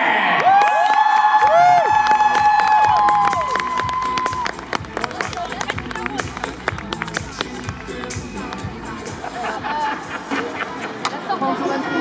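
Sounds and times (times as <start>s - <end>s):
crowd cheering: 0.0s - 12.0s
sharp claps: 0.4s - 8.7s.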